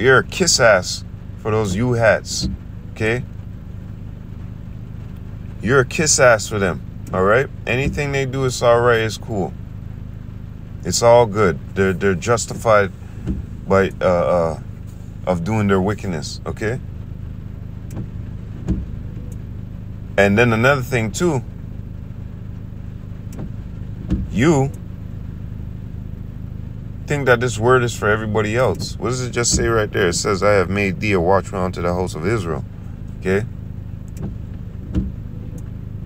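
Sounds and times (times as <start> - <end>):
low hum: 0.0 - 36.0
steady low rumble: 0.0 - 36.0
soft thump: 13.2 - 13.7, 17.9 - 19.0, 23.4 - 24.3, 34.2 - 35.2.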